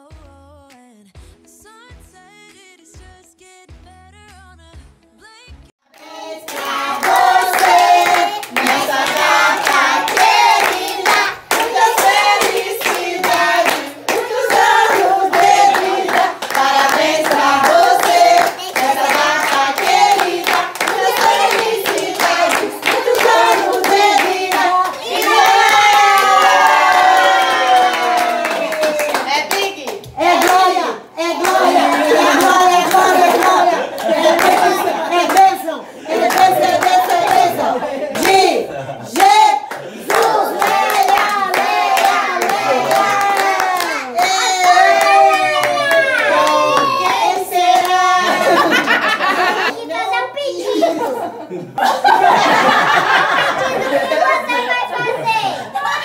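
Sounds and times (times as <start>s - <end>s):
adults and children singing: 5.9s - 29.2s, 30.0s - 49.7s
people clapping along: 6.0s - 49.7s, 52.0s - 54.4s.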